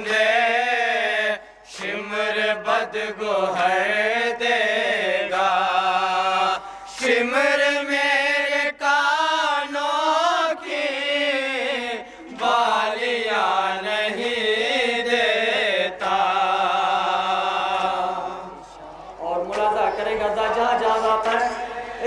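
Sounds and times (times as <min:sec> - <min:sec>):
men chanting a lament: 0:00.0 - 0:22.0.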